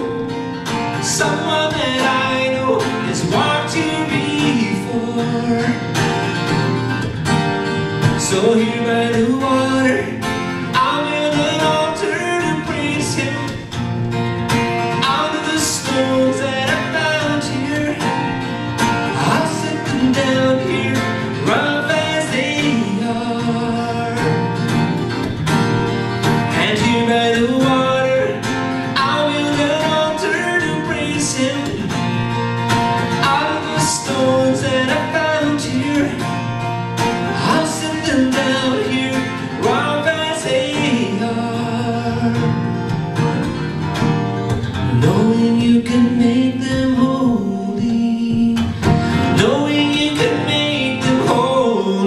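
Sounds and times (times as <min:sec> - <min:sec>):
man singing: 0:00.0 - 0:06.9, 0:07.8 - 0:13.9, 0:14.6 - 0:25.3, 0:26.1 - 0:43.5, 0:44.7 - 0:52.0
strummed acoustic guitar: 0:00.0 - 0:52.0.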